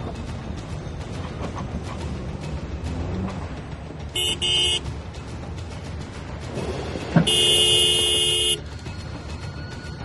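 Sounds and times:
car horn: 0:04.1 - 0:04.9, 0:07.2 - 0:08.7.

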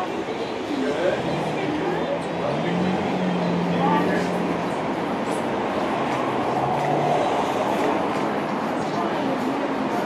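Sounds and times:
steady rumbling background noise: 0:03.8 - 0:10.0.

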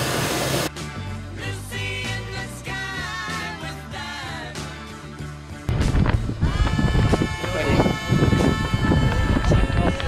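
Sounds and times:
background music: 0:00.5 - 0:10.0
wind buffeting microphone: 0:05.7 - 0:10.0.

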